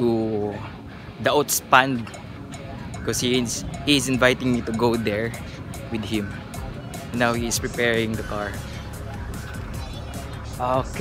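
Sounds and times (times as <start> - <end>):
car engine idling: 2.1 - 11.0
man speaking: 2.9 - 9.1, 10.1 - 11.0.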